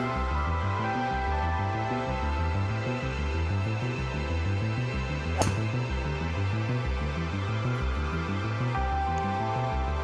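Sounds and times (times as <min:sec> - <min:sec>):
golf club striking ball: 0:05.3 - 0:06.0.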